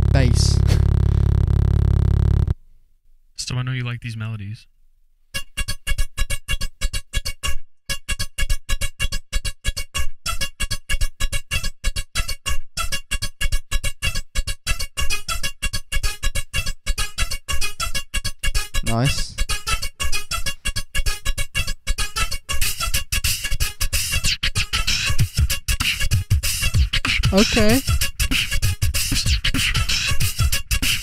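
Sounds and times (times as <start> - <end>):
beatbox vocal percussion: 22.6 - 31.0.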